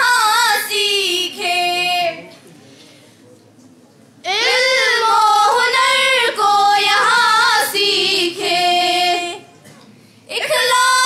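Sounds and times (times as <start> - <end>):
girls singing into microphones: 0.0 - 2.4, 4.3 - 9.5, 10.3 - 11.0.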